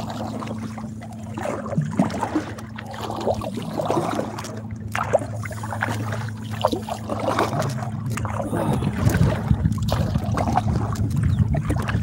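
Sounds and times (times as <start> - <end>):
steady low hum: 0.0 - 12.0
water splashing and dripping: 0.0 - 12.0.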